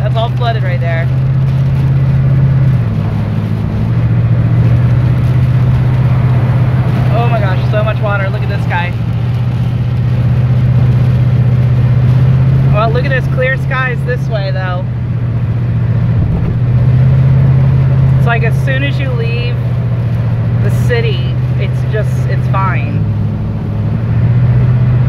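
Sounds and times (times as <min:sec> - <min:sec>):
tyre spray and rain: 0:00.0 - 0:15.6, 0:16.5 - 0:24.0
car engine and road drone: 0:00.0 - 0:25.0.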